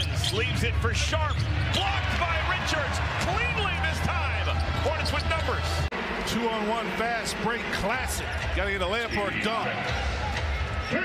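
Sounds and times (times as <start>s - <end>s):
sneaker squeaks: 0.0s - 2.0s
crowd noise: 0.0s - 11.0s
low hum of arena music: 0.0s - 11.0s.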